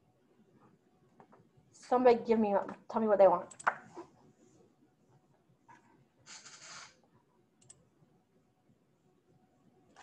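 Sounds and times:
computer mouse clicks: 3.5 - 3.9, 7.6 - 7.8.

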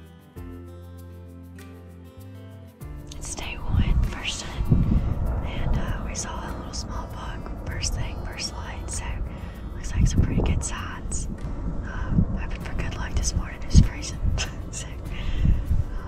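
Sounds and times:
woman whispering: 3.1 - 16.0.

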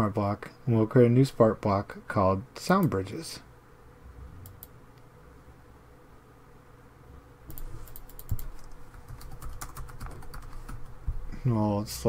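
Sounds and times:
typing on computer keyboard: 7.5 - 10.8.

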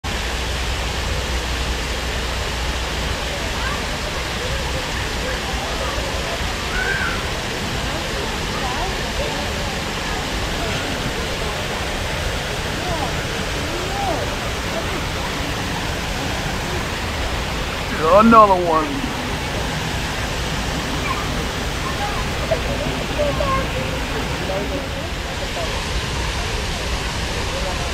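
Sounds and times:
waterfall pouring over rocks: 0.1 - 27.9.

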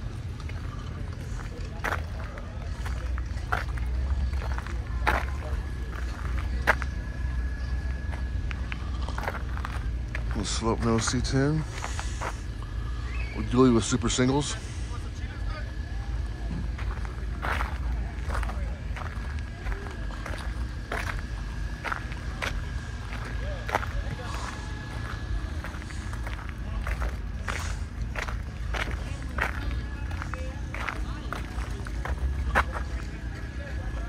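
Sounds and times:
footsteps on gravel: 0.0 - 14.9, 15.7 - 34.0.

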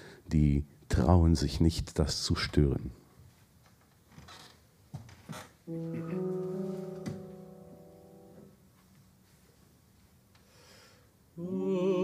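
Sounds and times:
piano chords: 5.7 - 8.9.

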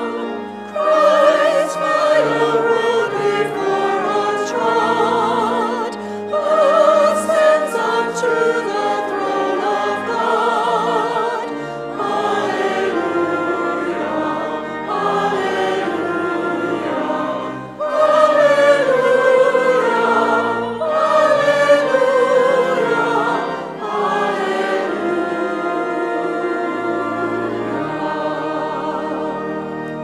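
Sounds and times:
church choir singing a hymn: 0.0 - 30.0.

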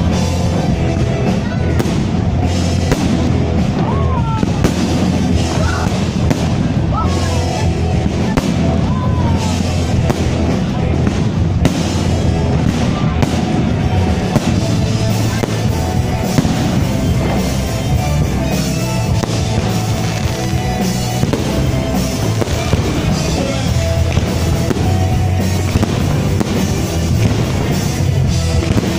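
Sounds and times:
fireworks bangs: 0.0 - 28.9
loud music: 0.0 - 28.9.

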